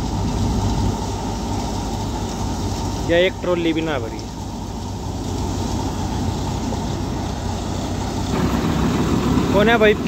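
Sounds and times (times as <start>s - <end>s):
diesel tractor engine running: 0.0s - 10.0s
thresher working: 0.0s - 10.0s.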